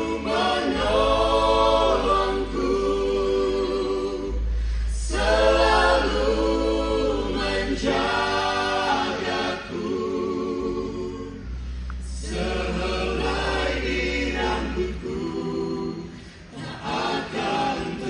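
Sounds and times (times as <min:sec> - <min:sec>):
group singing gospel song: 0:00.0 - 0:18.0
low held bass notes: 0:00.0 - 0:18.0.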